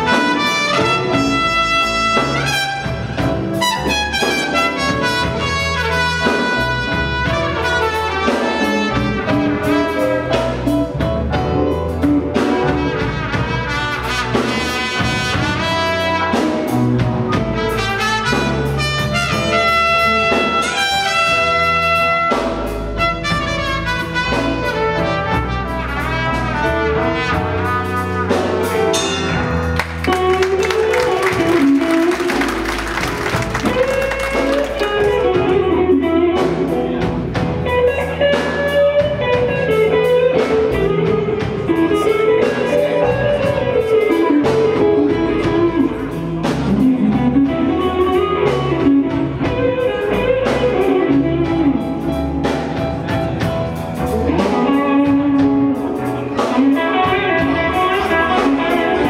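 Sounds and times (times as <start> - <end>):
blues band playing: 0.0 - 59.0
electric guitar melody: 0.0 - 59.0.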